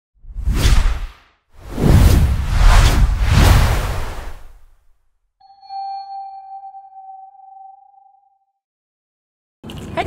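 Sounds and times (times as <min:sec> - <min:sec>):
whoosh sound effect: 0:00.3 - 0:04.8.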